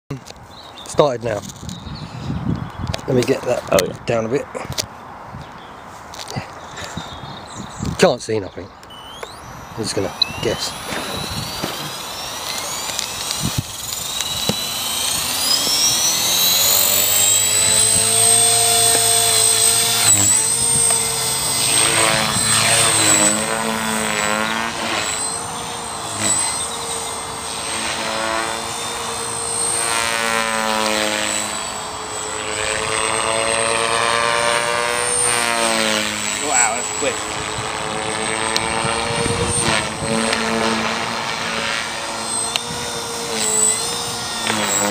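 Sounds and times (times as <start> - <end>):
rc helicopter motor whine: 0.2 - 4.0, 4.6 - 44.9
rotor buzz: 6.2 - 44.9.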